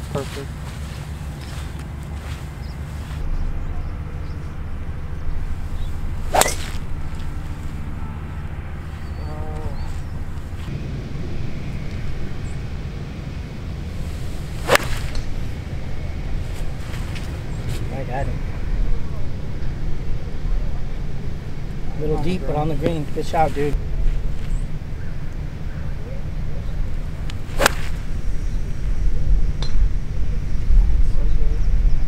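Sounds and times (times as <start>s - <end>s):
golf club striking ball: 5.8s - 7.5s, 14.2s - 15.5s, 27.3s - 28.2s
wind rumble on microphone: 23.7s - 32.0s.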